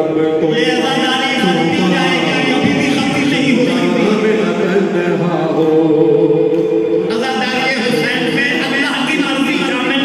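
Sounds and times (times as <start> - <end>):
men singing a lament unaccompanied: 0.0 - 10.0.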